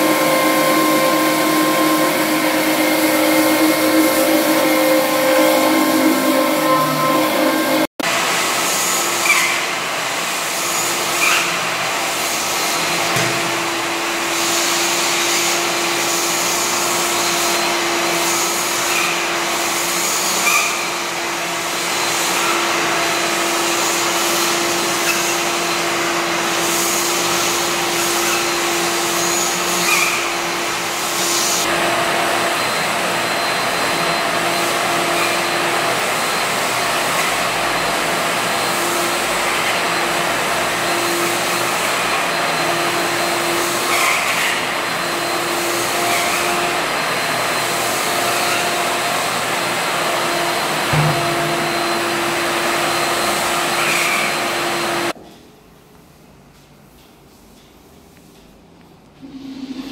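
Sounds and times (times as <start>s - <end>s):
vacuum cleaner running: 0.0s - 55.2s.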